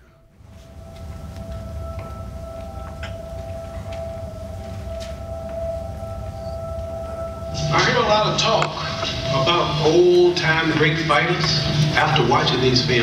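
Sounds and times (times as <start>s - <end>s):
steady held tone: 0.0s - 13.0s
low rumble: 0.4s - 13.0s.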